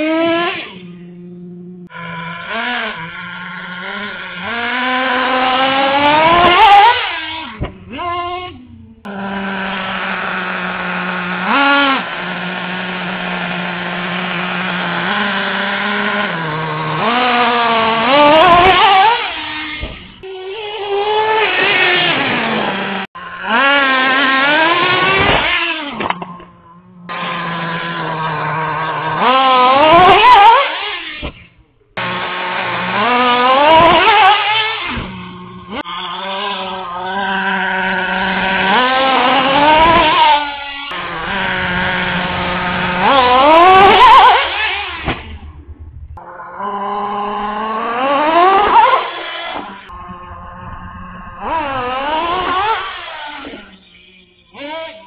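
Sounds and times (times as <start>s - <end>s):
small nitro engine revving: 0.0s - 55.0s.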